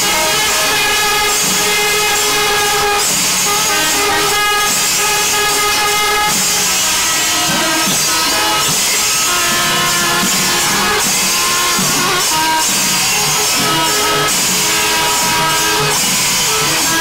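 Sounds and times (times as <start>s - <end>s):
hand cymbals clashing: 0.0s - 17.0s
horns playing held notes: 0.0s - 17.0s.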